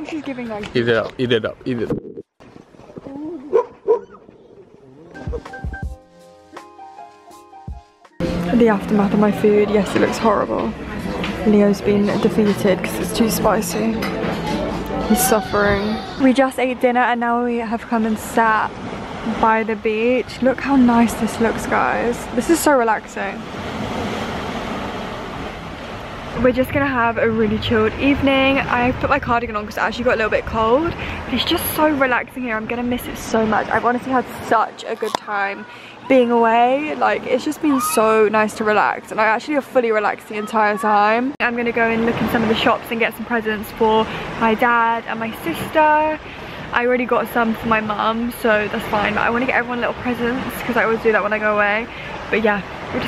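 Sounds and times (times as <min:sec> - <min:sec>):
music with deep bass beats: 0:05.2 - 0:06.6
small waves washing onto shore: 0:17.5 - 0:39.5, 0:41.6 - 0:53.0.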